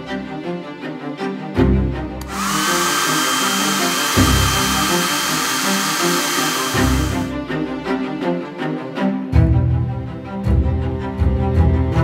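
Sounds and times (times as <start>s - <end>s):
hair dryer blowing: 2.2s - 7.3s.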